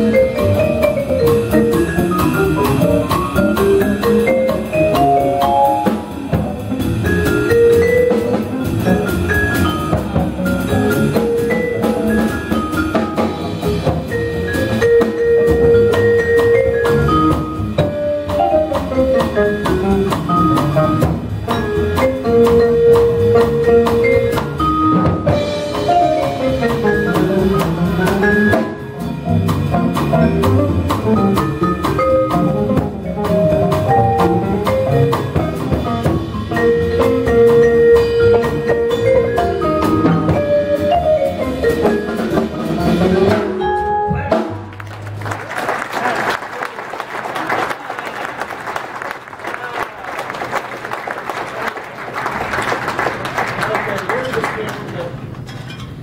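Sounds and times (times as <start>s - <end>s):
vibraphone melody: 0.0s - 44.4s
plucked upright bass: 0.0s - 44.7s
drum kit: 0.0s - 45.7s.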